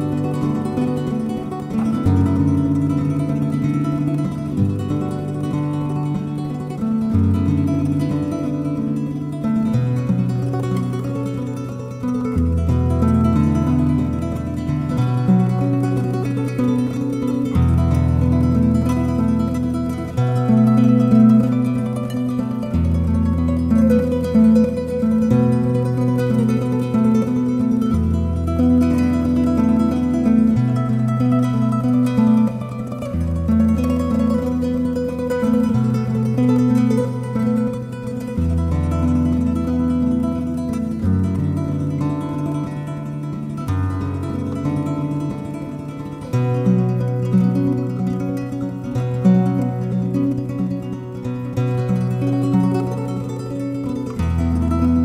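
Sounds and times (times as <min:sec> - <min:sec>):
classical guitar lullaby: 0:00.0 - 0:55.0.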